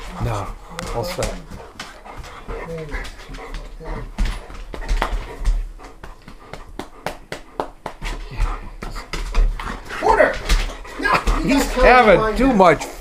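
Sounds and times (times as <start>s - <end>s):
dog: 0.0s - 11.9s.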